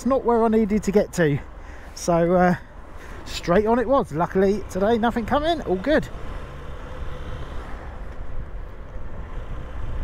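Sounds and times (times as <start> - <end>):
road and wind noise: 0.0 - 10.0.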